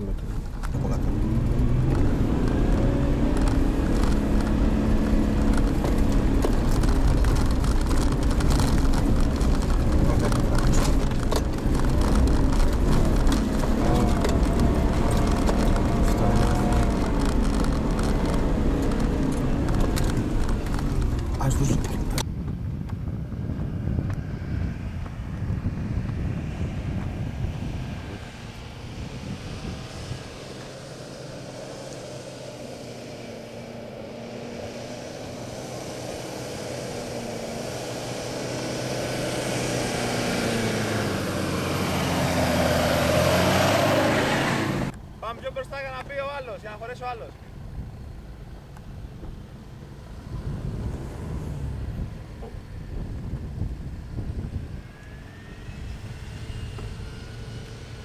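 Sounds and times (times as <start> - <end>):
engine labouring uphill: 0.0 - 58.0
off-road vehicle engine climbing: 0.0 - 58.0.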